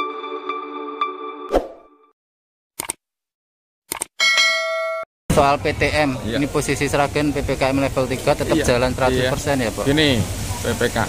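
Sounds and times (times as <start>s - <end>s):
bell chime: 4.2s - 5.1s.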